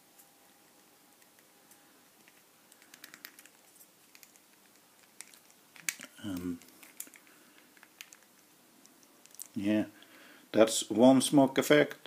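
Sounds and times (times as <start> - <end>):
plastic parts clicking and rustling: 2.2 - 9.6.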